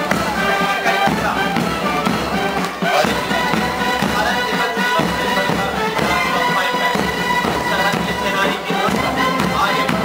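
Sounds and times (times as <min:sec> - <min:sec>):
bass drum: 0:00.0 - 0:10.0
cymbals: 0:00.0 - 0:10.0
marching band playing: 0:00.0 - 0:10.0.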